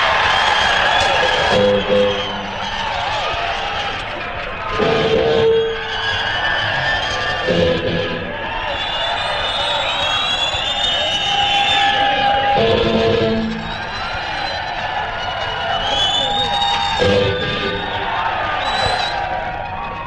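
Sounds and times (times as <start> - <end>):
crowd cheering: 0.0 - 20.0.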